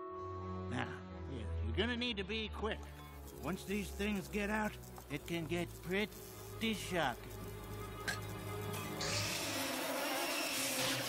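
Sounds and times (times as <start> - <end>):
background music: 0.0 - 11.0
cartoon swarm of electric bugs: 3.1 - 11.0.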